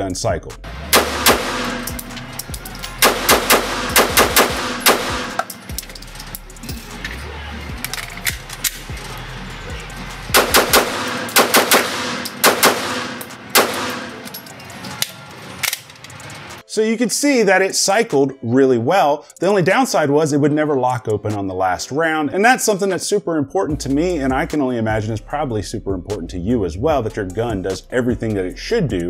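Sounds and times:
pistol shots echoing indoors: 0:00.9 - 0:02.1, 0:03.0 - 0:05.6, 0:10.3 - 0:14.3.

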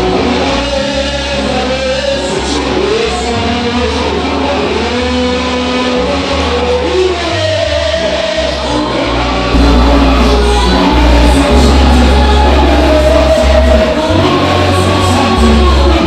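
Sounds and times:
amplified worship singing: 0:00.0 - 0:16.0
band accompaniment: 0:00.0 - 0:16.0
steady bass line: 0:00.0 - 0:16.0.

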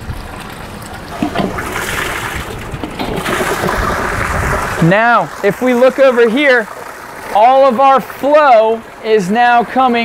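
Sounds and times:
water rushing through pipes: 0:00.0 - 0:10.0.

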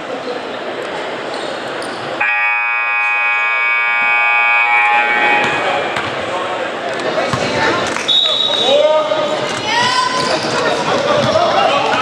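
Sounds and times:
crowd chatter: 0:00.0 - 0:12.0
scoreboard horn blast: 0:02.2 - 0:06.2.

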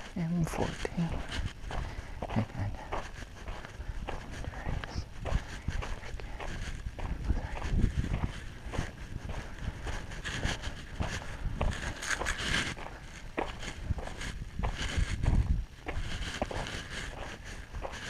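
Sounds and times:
footsteps crunching on gravel: 0:00.0 - 0:18.0.

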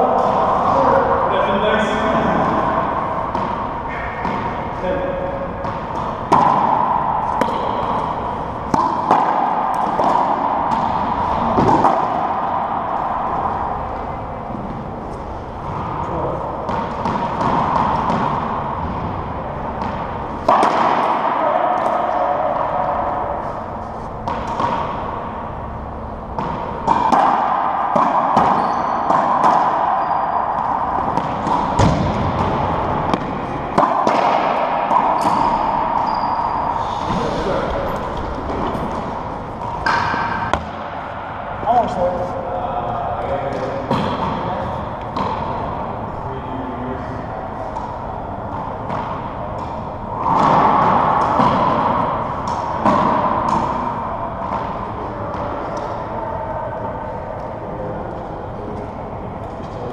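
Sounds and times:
indistinct voices: 0:00.0 - 0:59.9
ball knocking off walls and floor: 0:31.0 - 0:35.7.

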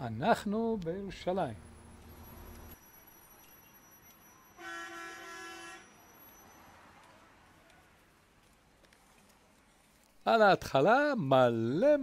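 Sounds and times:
faint traffic noise: 0:00.0 - 0:12.0
vehicle horn honk: 0:04.6 - 0:06.2.

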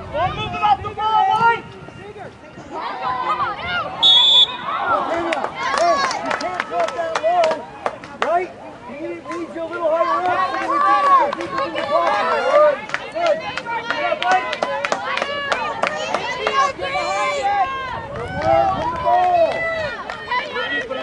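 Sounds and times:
voices shouting: 0:00.1 - 0:21.0
short high whistle blast: 0:04.0 - 0:04.7.

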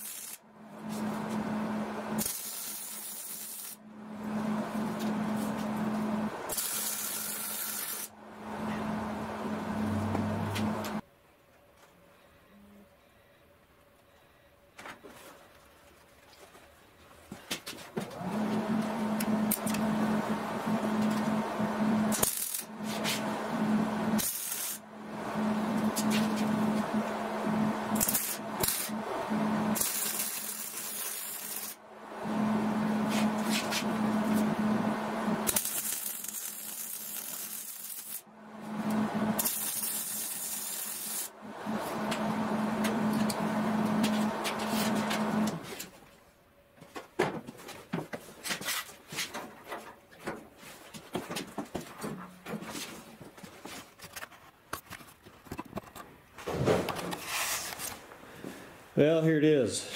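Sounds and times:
welding arc crackling: 0:00.0 - 0:00.4, 0:02.2 - 0:03.8, 0:06.5 - 0:08.1, 0:22.1 - 0:22.7, 0:24.2 - 0:24.8, 0:27.9 - 0:29.0, 0:29.8 - 0:31.8, 0:35.4 - 0:38.2, 0:39.3 - 0:41.3
welder low hum: 0:00.0 - 0:11.0, 0:18.2 - 0:45.7.

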